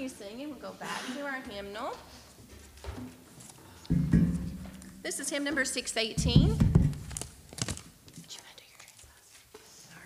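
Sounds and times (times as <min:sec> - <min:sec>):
soft whispered voice: 0:08.2 - 0:10.0.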